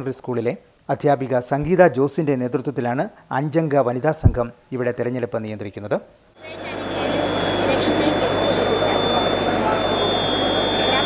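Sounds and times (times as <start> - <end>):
high-pitched whine: 6.4 - 11.0
indistinct voices: 6.4 - 11.0
low steady hum: 6.4 - 11.0.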